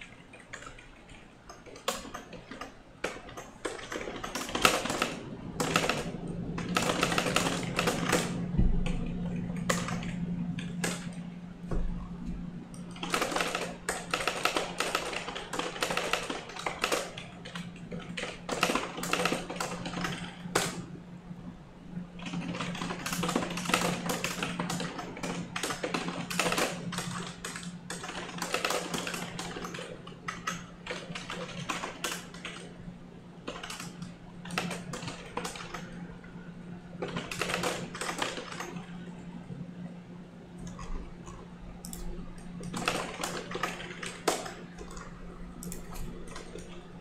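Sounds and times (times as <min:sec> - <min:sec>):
fast typing on computer keyboard: 0:00.0 - 0:11.2, 0:12.7 - 0:20.9, 0:22.2 - 0:32.7, 0:33.4 - 0:36.1, 0:37.0 - 0:39.1, 0:40.6 - 0:47.0.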